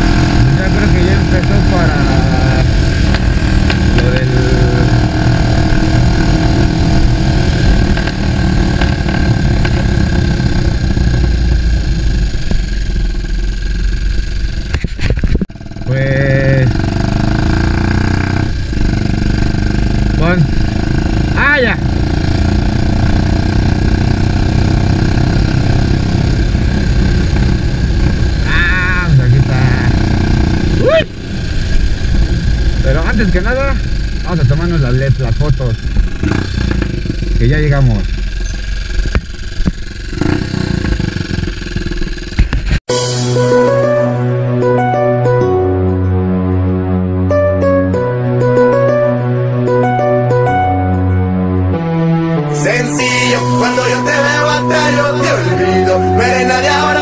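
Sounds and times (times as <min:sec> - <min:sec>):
wind rumble: 0:00.0 - 0:15.9, 0:16.6 - 0:42.8
motorcycle engine rumbling: 0:00.0 - 0:44.1, 0:52.4 - 0:57.0
voice-like pitch-bending sounds: 0:28.4 - 0:30.1, 0:30.7 - 0:31.2, 0:52.5 - 0:57.0.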